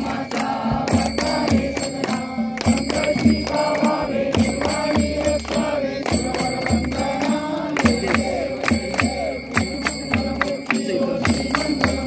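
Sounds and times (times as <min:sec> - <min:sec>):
devotional chanting: 0:00.0 - 0:12.0
high ringing tone: 0:00.0 - 0:12.0
rhythmic drum beats: 0:00.0 - 0:12.0.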